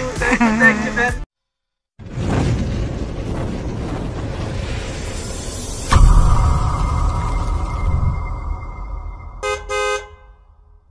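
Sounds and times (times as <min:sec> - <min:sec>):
low rumble: 0:02.0 - 0:10.9
car horn honking: 0:09.4 - 0:10.5.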